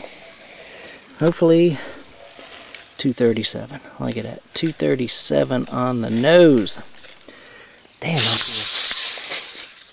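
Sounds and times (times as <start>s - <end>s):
long hissing breath: 0.0s - 2.9s, 7.2s - 9.6s.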